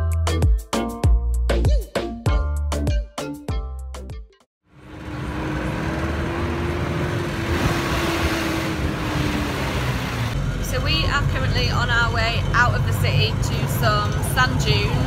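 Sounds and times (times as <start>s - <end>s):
road traffic: 4.6s - 15.0s
minibus engine rumble: 4.7s - 15.0s
vehicle engine drone: 4.7s - 15.0s
woman talking: 10.6s - 15.0s.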